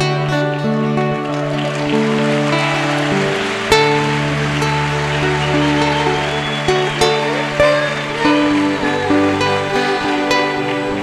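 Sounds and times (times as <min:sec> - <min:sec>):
acoustic guitars playing ballad: 0:00.0 - 0:11.0.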